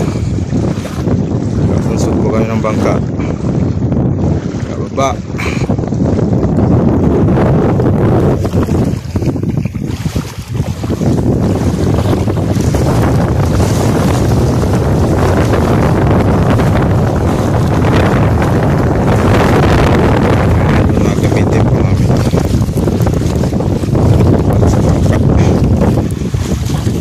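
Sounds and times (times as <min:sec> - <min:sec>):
shallow sea water washing: 0:00.0 - 0:27.0
wind buffeting microphone: 0:00.0 - 0:27.0.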